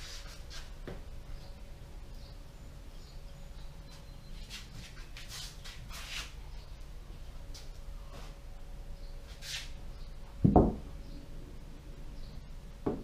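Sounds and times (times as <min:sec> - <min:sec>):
low hum with faint tone: 0:00.0 - 0:13.0.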